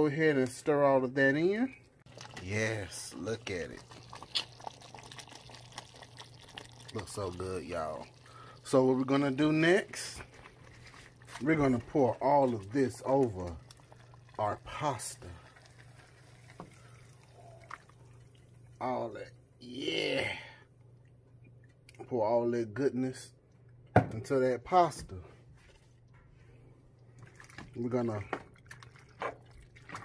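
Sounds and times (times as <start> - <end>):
cream sauce pouring over pasta: 2.1 - 18.5.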